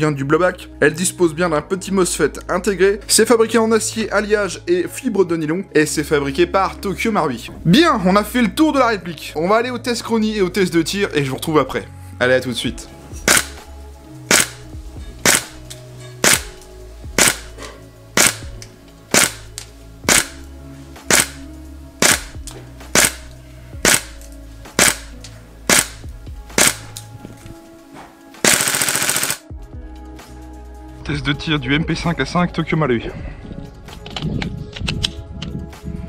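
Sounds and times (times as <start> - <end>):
airsoft gun shots cracking: 13.2 - 13.6, 14.3 - 14.6, 15.2 - 15.6, 16.2 - 16.6, 17.2 - 17.5, 18.2 - 20.4, 21.1 - 21.4, 22.0 - 24.2, 24.8 - 25.1, 25.7 - 26.0, 26.6 - 27.0, 28.4 - 29.4.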